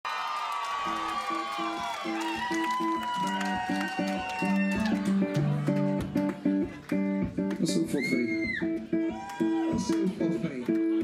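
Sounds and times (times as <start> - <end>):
crowd whooping: 0.1 - 5.9, 7.8 - 10.1
live band plucked-string riff: 0.9 - 11.0.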